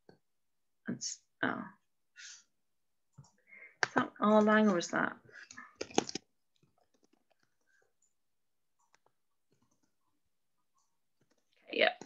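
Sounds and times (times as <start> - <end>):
keyboard and mouse clicks: 5.5 - 8.2, 8.8 - 10.0.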